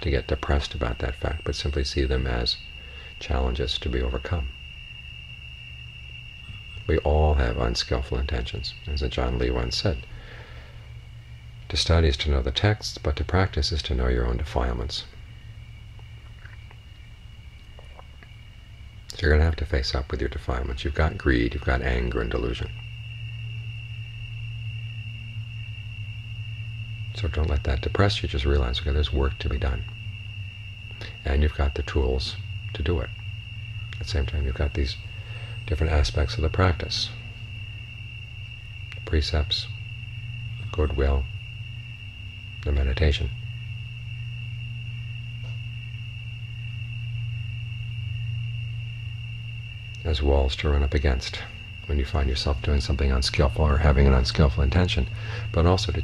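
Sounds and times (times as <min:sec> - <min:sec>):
cricket trill: 0:00.0 - 0:56.0
low hum: 0:00.0 - 0:56.0.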